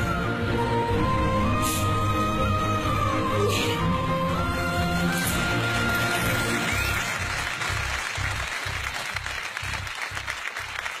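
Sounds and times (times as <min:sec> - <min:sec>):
studio audience applauding: 0:05.6 - 0:11.0.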